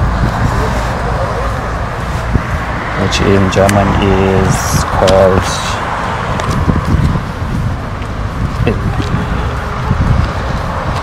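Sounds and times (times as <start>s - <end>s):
road traffic: 0.0s - 11.0s
wind buffeting microphone: 0.0s - 11.0s.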